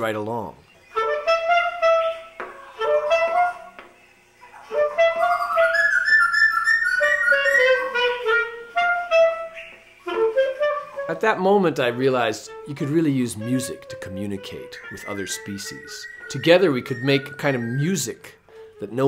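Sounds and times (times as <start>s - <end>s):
clarinet playing held notes: 0.8s - 3.8s, 4.6s - 19.0s
laughing thrush singing: 4.5s - 8.4s, 9.2s - 18.4s.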